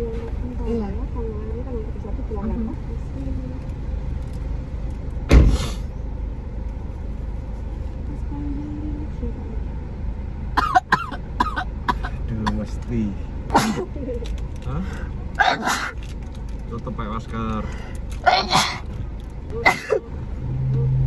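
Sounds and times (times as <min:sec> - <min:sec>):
car cabin rumble: 0:00.0 - 0:21.0.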